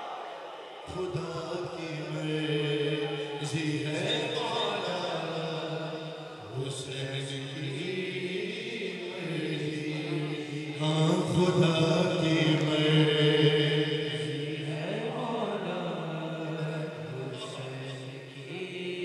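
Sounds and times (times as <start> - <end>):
man singing devotional poem: 0.9 - 19.0.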